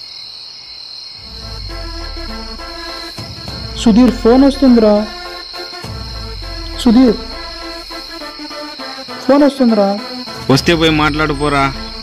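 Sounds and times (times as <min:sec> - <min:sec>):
crickets chirring: 0:00.0 - 0:12.0
loud voice with bending pitch: 0:01.2 - 0:05.5, 0:06.6 - 0:08.2
soft background music: 0:01.2 - 0:12.0.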